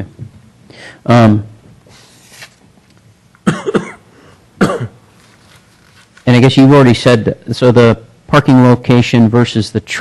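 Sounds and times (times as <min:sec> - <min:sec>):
man coughing: 0:03.4 - 0:05.0.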